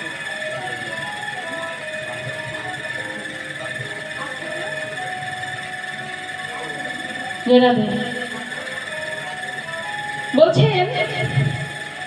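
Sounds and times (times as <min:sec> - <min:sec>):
soft held instrumental notes: 0:00.0 - 0:12.0
steady high-pitched whine: 0:00.0 - 0:12.0.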